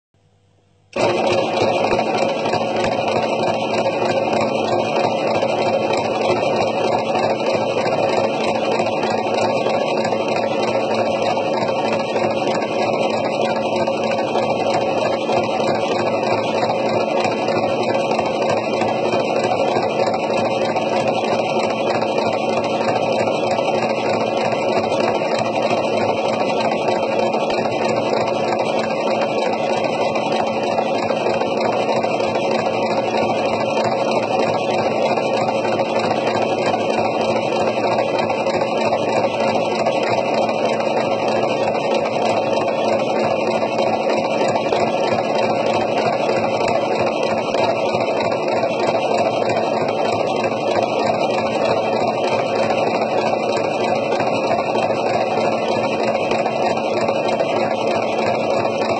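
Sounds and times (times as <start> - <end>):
electric sewing machine running: 0.9 - 58.9.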